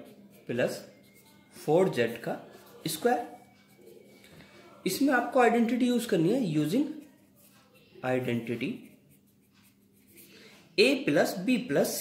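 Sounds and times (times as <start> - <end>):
man speaking: 1.6 - 3.4, 8.0 - 8.8
pen scratching on paper: 8.4 - 10.4.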